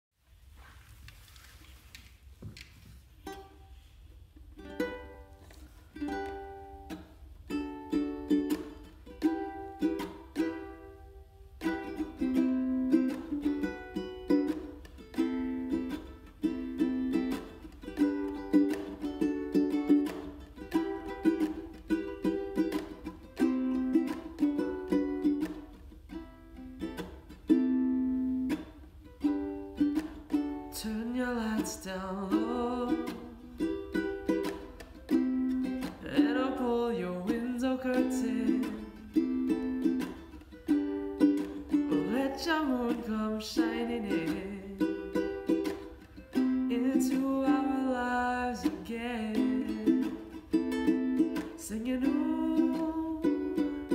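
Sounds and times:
ukulele strumming: 2.6 - 53.9
man singing: 30.8 - 33.4, 36.0 - 39.2, 41.9 - 45.0, 46.6 - 50.2, 51.6 - 53.7.

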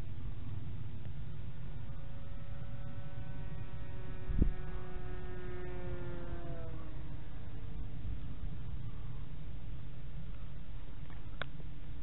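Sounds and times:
electric motor and propeller whining: 0.0 - 11.8
wind on microphone: 3.2 - 10.8.

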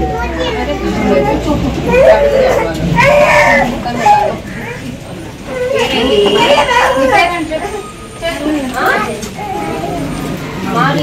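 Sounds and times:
adults and children talking: 0.0 - 11.0.

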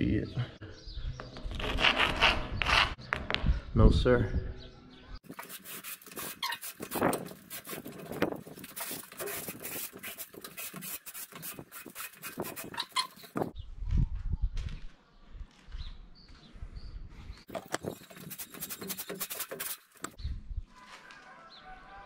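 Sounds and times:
rock scratching on concrete: 5.2 - 13.6, 17.5 - 20.2.

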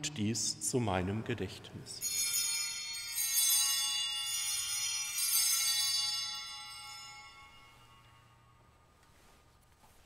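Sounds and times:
altar bells ringing: 1.9 - 9.5.

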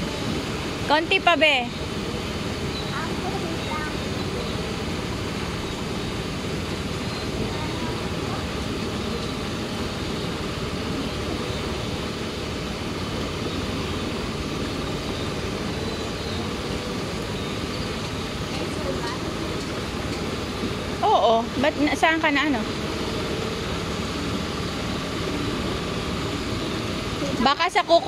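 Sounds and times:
pool jets churning water: 0.0 - 28.0.

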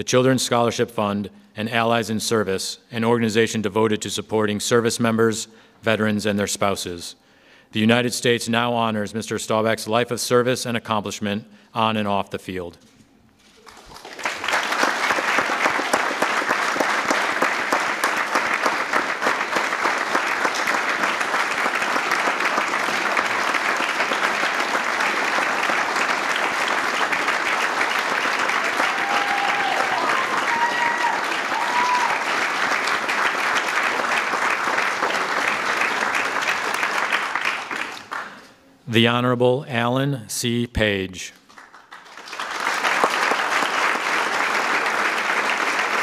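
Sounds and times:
audience applauding: 13.6 - 38.5, 41.5 - 46.0.

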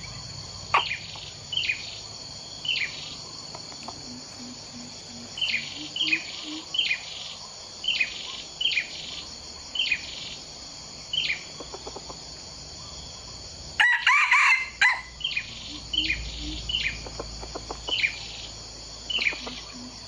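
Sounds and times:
chicken clucking: 11.6 - 12.2, 16.4 - 18.1, 19.1 - 20.0
rooster crowing: 13.8 - 15.2.

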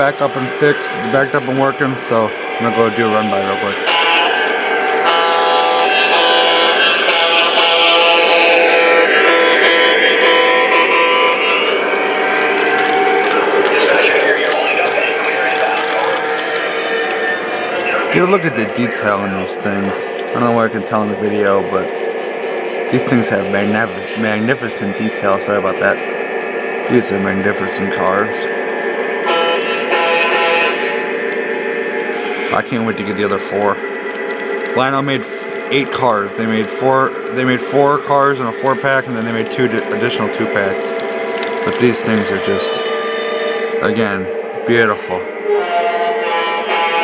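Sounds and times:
wheels clicking on track: 0.0 - 45.2
model train steady tones: 0.0 - 47.0.

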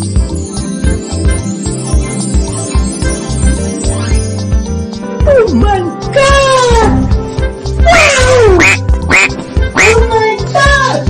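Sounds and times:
upbeat children's music: 0.0 - 11.0
cartoon duck quacks: 7.9 - 10.1.

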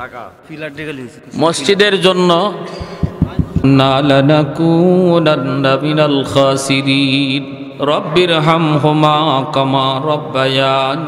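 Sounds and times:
man chanting into microphone: 1.4 - 11.0.

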